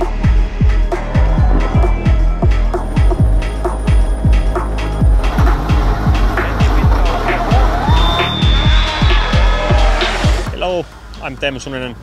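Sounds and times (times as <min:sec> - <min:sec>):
music with heavy kick drum: 0:00.0 - 0:10.8
rally car engine: 0:00.7 - 0:10.5
man speaking: 0:10.5 - 0:12.0.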